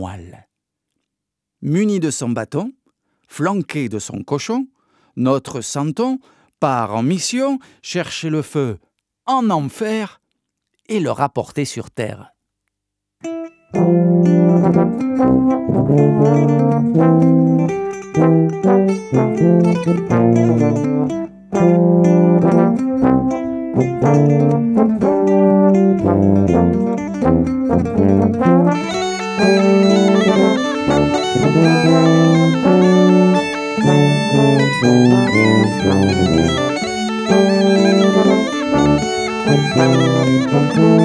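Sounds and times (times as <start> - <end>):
tuba and trombone music: 13.8 - 41.0
brighter higher instrument: 14.7 - 41.0.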